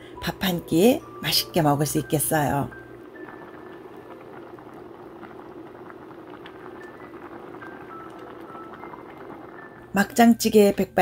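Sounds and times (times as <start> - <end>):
stew bubbling in a pot: 0.4 - 10.7.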